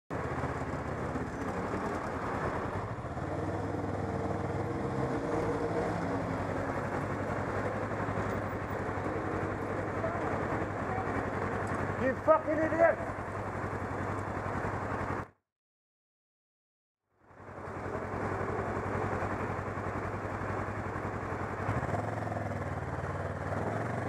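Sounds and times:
motorcycle engine running: 0.1s - 15.3s, 17.2s - 24.0s
wind and road noise: 0.1s - 15.4s, 17.1s - 24.0s.

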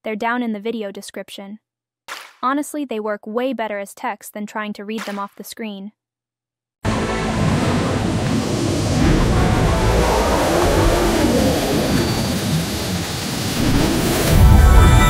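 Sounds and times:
music: 6.8s - 8.0s, 9.0s - 11.3s, 14.2s - 15.0s
rushing rumbling noise: 6.9s - 15.0s.

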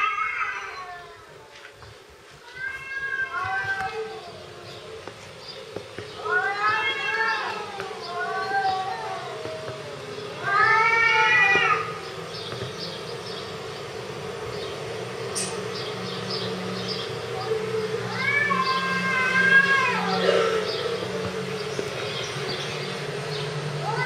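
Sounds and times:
cat meowing: 2.4s - 4.6s, 6.2s - 11.9s, 17.4s - 21.0s, 23.8s - 24.0s.

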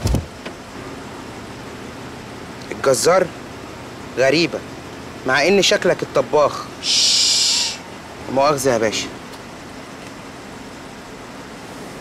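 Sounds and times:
outdoor ambience hiss: 0.0s - 12.0s.

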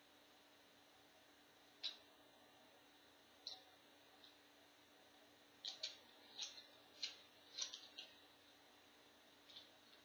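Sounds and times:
paintbrush handles clicking and rattling: 5.6s - 8.2s.

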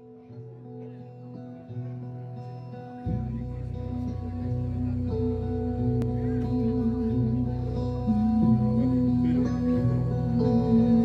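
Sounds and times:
guitars: 0.0s - 11.0s
deep bass note: 3.1s - 11.0s.

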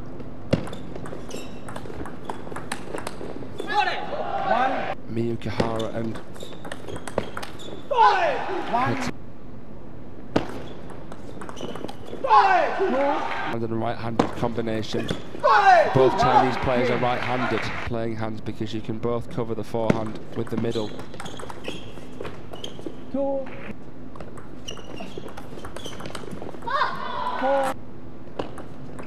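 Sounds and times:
large hall background noise: 0.0s - 29.0s
ping pong ball clicking on bats: 0.5s - 3.3s, 6.2s - 7.6s, 10.8s - 12.0s, 19.9s - 21.7s, 24.1s - 26.8s
short high squeaks: 1.2s - 1.7s, 20.7s - 23.6s, 24.6s - 26.2s.

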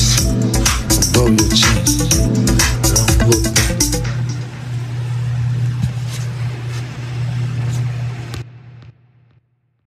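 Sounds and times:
low droning hum with hiss: 0.0s - 9.3s.

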